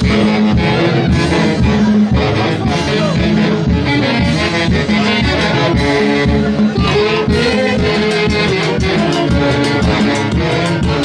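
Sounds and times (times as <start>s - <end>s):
band playing dance tune: 0.0s - 11.0s.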